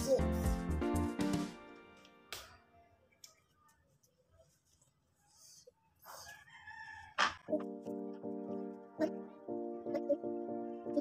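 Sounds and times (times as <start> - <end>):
rooster crowing faintly: 6.0 - 7.6.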